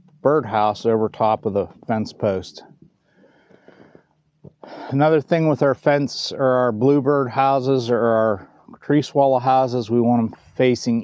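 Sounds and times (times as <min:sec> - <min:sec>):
man speaking: 0:00.2 - 0:02.7, 0:04.7 - 0:11.0
man breathing: 0:03.0 - 0:05.0.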